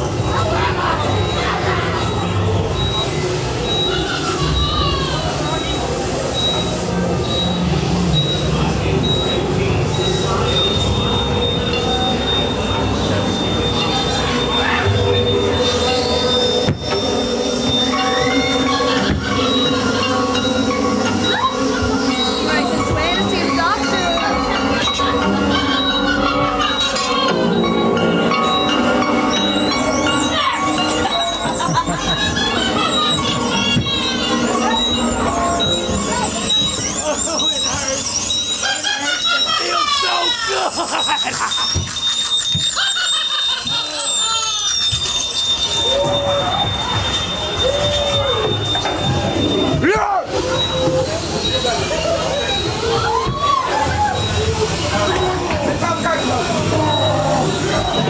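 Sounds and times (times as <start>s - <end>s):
high-pitched gliding whines: 0.0s - 58.0s
metallic machine-like drone: 0.0s - 58.0s
steady high tone: 0.0s - 58.0s
short chirping tones: 2.0s - 49.8s
rising screech: 9.9s - 58.0s.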